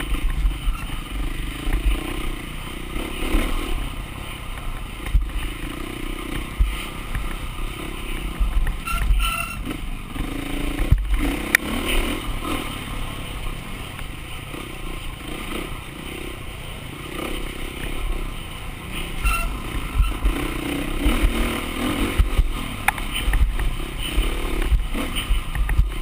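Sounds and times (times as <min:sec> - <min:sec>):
bike rattling over rough ground: 0:00.0 - 0:26.0
dirt bike engine revving: 0:00.0 - 0:26.0.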